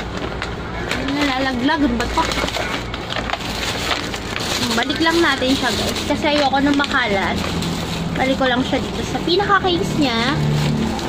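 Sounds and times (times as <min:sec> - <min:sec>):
plastic bag crackling: 0:00.0 - 0:11.0.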